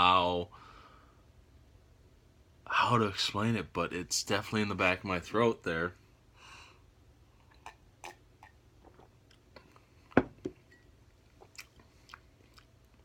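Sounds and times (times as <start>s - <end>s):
man sipping and swallowing: 7.4s - 10.6s.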